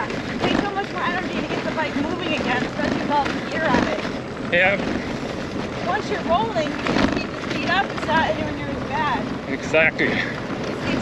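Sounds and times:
cyclists talking: 0.0s - 11.0s
wind noise on microphone: 0.0s - 11.0s.

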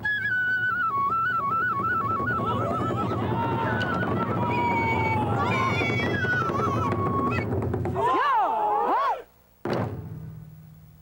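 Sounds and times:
taiko drum beat: 1.8s - 8.1s.

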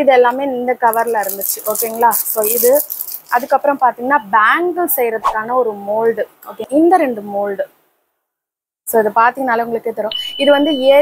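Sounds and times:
woman talking: 0.0s - 7.7s, 8.9s - 11.0s
plastic packet crinkling: 0.8s - 3.6s.

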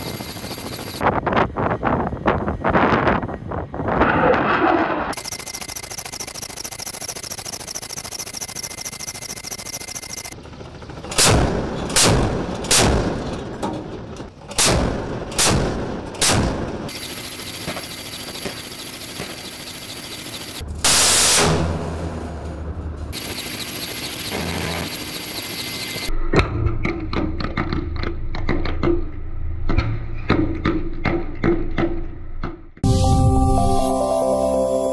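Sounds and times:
heavy gun shots: 11.1s - 13.6s, 14.5s - 17.0s
missile launch rushing blast: 20.7s - 22.7s.

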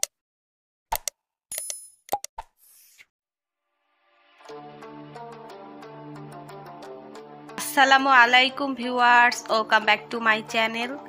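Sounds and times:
sharp mouse clicks: 0.9s - 2.5s.

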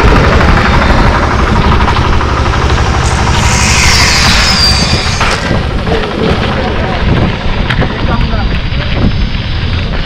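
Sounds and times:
wind rumbling on microphone: 0.0s - 10.0s
bike knocking and rattling: 4.9s - 10.0s.

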